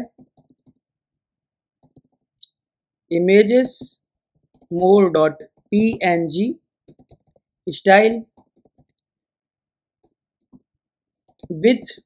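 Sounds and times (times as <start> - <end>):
computer keyboard keystrokes: 6.9 - 7.4.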